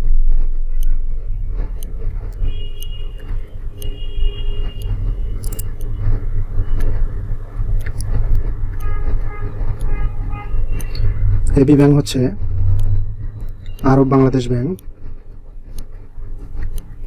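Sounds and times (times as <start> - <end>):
faint pitched sound: 0.0 - 17.0
low background rumble: 0.0 - 17.0.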